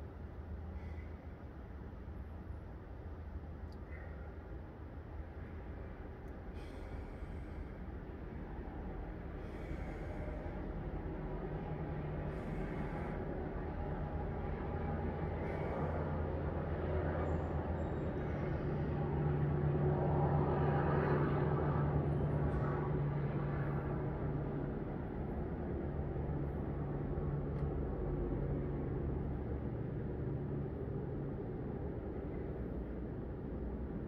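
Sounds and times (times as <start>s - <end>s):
road traffic engine rumble: 0.0s - 19.8s.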